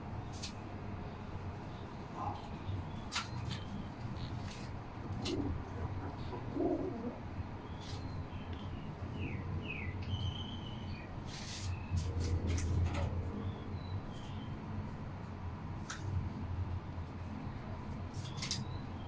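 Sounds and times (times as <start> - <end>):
steady low hum: 0.0 - 19.0
pigeon cooing: 3.6 - 7.4.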